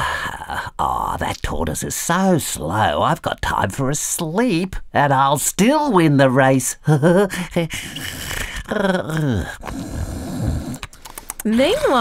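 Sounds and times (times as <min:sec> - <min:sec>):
person mock snoring: 0:07.5 - 0:12.0
drawn-out vocal sound: 0:07.6 - 0:12.0.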